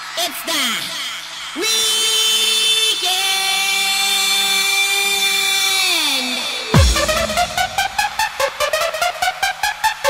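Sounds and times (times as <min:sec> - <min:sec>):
buzzy synth note: 0:06.8 - 0:08.2.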